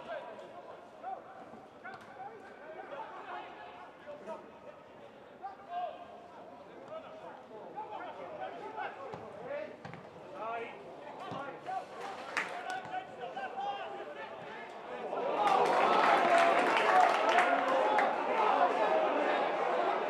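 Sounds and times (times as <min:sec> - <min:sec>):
players shouting: 0:11.3 - 0:20.0.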